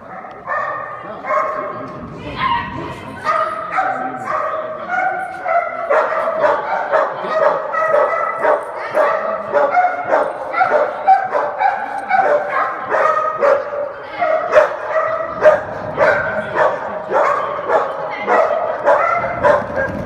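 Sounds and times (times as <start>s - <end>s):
dog barking: 0.0s - 20.0s.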